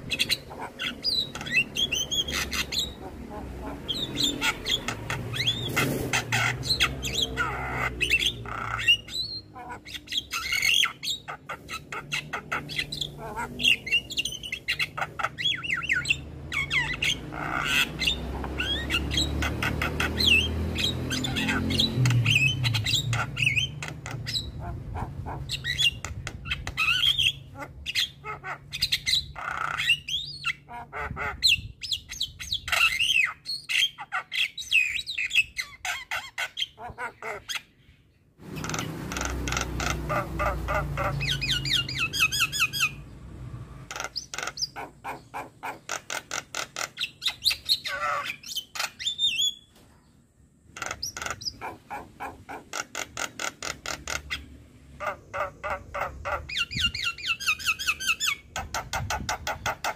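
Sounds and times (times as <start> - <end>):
myna squawking and whistling: 0.0 - 37.7, 38.6 - 43.0.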